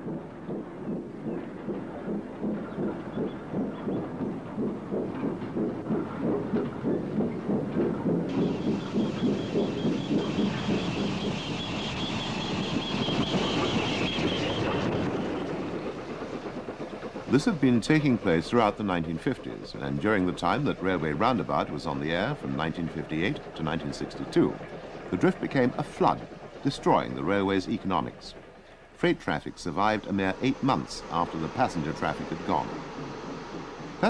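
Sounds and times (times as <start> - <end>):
goods train running past: 0.0 - 34.0.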